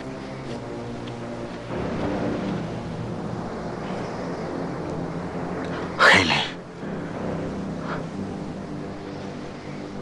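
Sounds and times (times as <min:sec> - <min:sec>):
low drone: 0:00.0 - 0:10.0.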